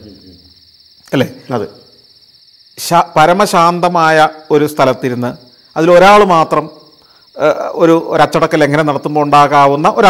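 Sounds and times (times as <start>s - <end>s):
man speaking: 0.0s - 0.5s, 1.1s - 1.8s, 7.4s - 10.0s
insects chirring: 0.0s - 10.0s.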